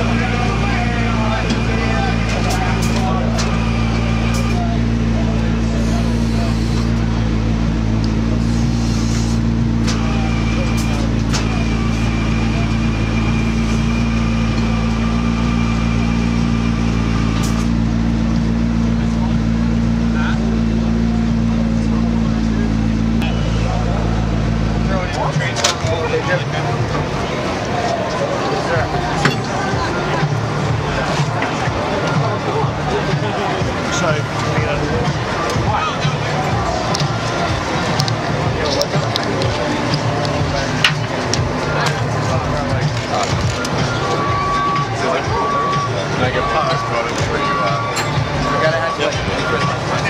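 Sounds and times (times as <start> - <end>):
vehicle engine idling: 0.0 - 50.0.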